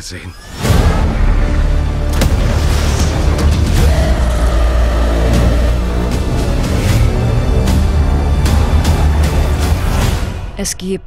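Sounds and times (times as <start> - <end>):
deep rumble: 0.7 - 10.6.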